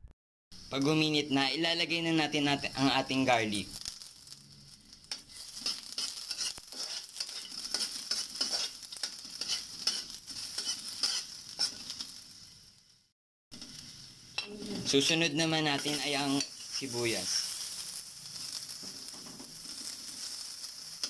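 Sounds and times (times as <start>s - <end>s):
garlic sizzling in hot oil: 0.6s - 21.0s
metal spatula scraping wok: 3.8s - 12.5s, 13.6s - 21.0s.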